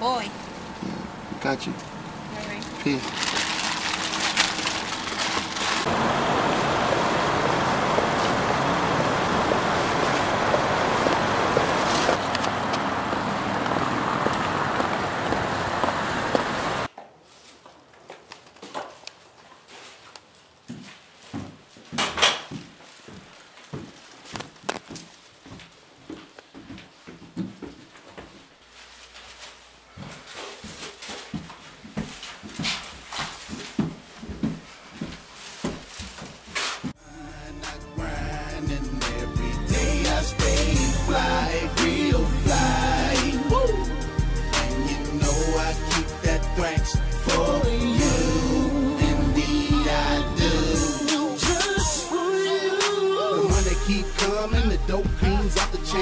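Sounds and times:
traffic hiss and rumble: 0.0s - 16.9s
plastic bag rustling: 2.4s - 6.0s, 17.2s - 25.9s, 28.5s - 37.0s
footsteps on carpeted stairs: 20.6s - 37.0s.

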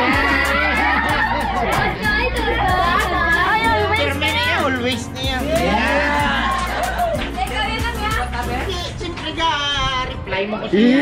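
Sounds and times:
people laughing: 0.0s - 4.4s, 5.4s - 8.0s
background music with steady beat: 0.0s - 9.4s
overlapping chatter: 0.0s - 11.0s.

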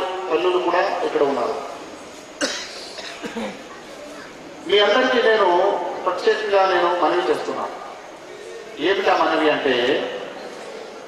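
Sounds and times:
person coughing: 2.4s - 3.6s.

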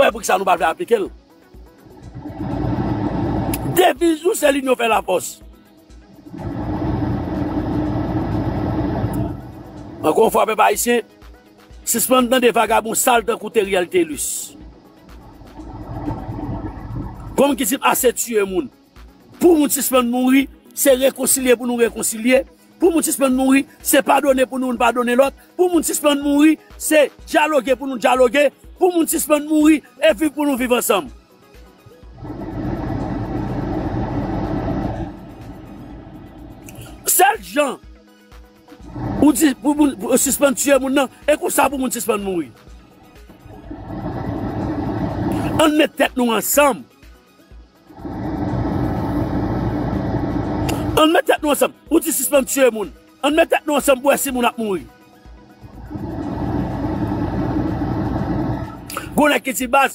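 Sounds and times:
quiet background music: 0.0s - 59.9s
road vehicle passing: 1.8s - 3.8s, 6.2s - 10.1s, 15.0s - 17.4s, 32.2s - 37.1s, 38.8s - 39.5s, 43.4s - 45.6s, 47.9s - 51.0s, 55.8s - 58.9s.

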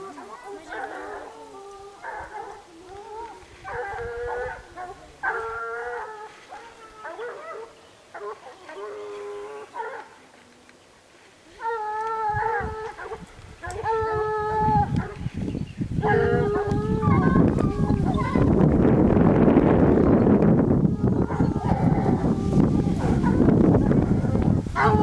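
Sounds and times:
hounds baying: 0.0s - 10.2s, 11.6s - 15.4s, 16.0s - 18.6s, 21.0s - 25.0s.

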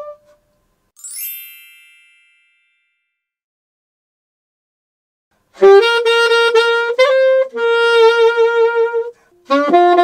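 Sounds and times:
bright chime with shimmer: 1.0s - 3.2s.

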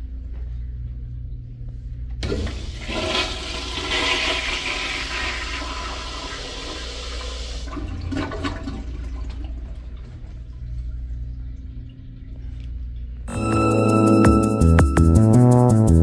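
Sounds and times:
toilet flushing: 2.2s - 10.9s.

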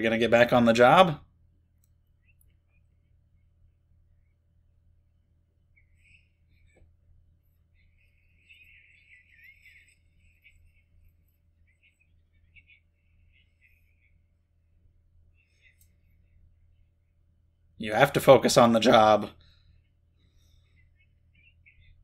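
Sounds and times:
low room hum: 0.0s - 22.0s
faint thin voice-like sounds: 5.6s - 17.2s.

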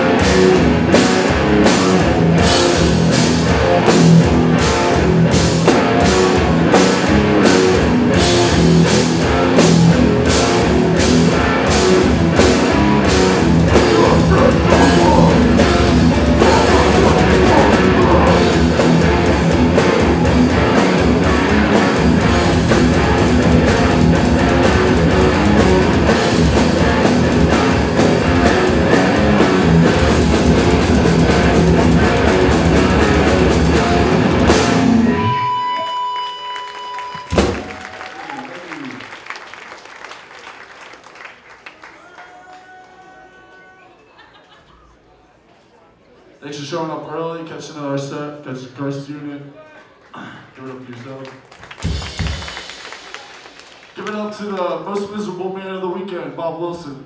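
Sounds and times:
loud band hit: 0.0s - 35.5s, 37.2s - 38.1s, 51.7s - 53.6s
hardcore band playing live: 0.0s - 39.2s, 51.5s - 55.3s
shouted vocals: 13.7s - 18.8s, 41.9s - 44.2s
steady high tone: 34.7s - 37.9s
amplifiers ringing out: 34.8s - 37.9s.

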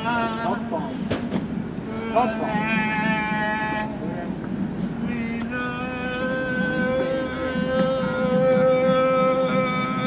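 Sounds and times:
street noise hum: 0.0s - 10.0s.

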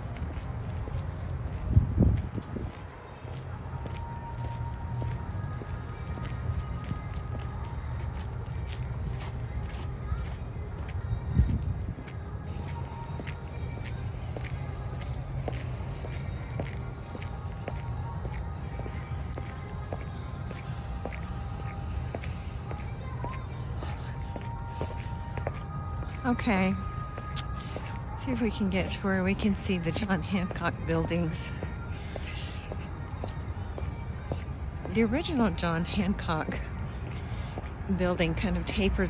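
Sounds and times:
faint background music: 0.0s - 39.0s
steady low rumble: 0.0s - 39.0s.

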